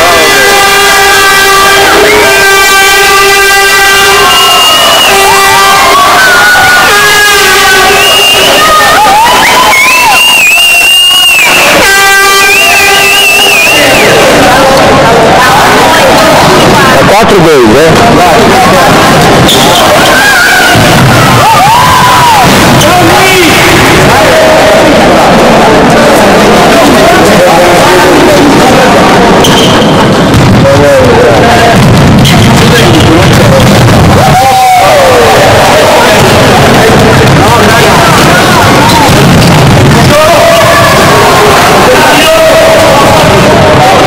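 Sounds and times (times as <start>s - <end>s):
shrill air horns sliding: 0.0s - 16.9s
steady buzzy horn blast: 0.0s - 17.0s
crowd: 0.0s - 44.0s
echoing sports hall din: 0.0s - 44.0s
players and spectators voices: 0.0s - 44.0s.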